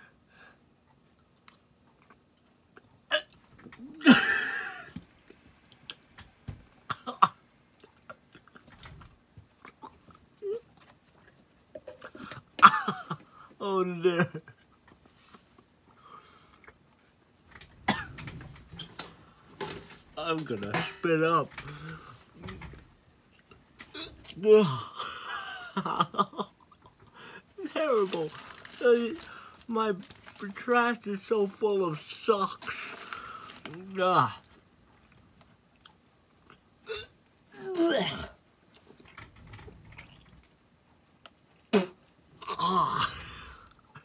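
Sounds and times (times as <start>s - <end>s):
man gagging and retching: 2.8s - 4.9s, 36.4s - 38.4s, 41.6s - 44.0s
man coughing: 12.6s - 13.2s, 17.9s - 18.2s, 36.9s - 38.4s
man gagging: 36.9s - 38.4s, 42.4s - 43.6s.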